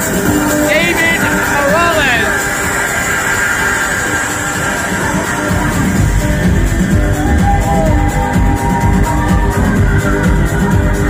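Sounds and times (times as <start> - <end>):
loud house music: 0.0 - 11.0.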